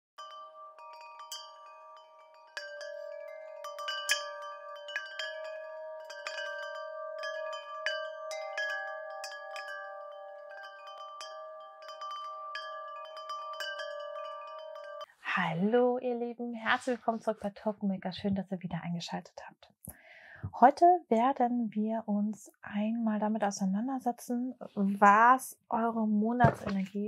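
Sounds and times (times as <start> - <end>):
wind chimes tinkling: 0.2 - 15.1.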